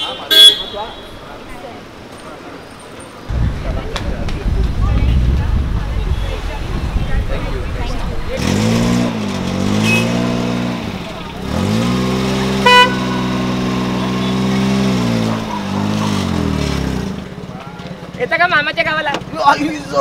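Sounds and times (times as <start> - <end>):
car horn toot: 0.0 - 1.3, 9.8 - 10.4, 12.6 - 14.5
small car engine revving: 8.3 - 17.3.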